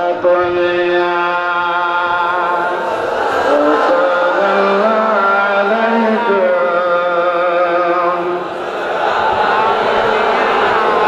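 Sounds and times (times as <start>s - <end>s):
man chanting over loudspeakers: 0.0s - 8.6s.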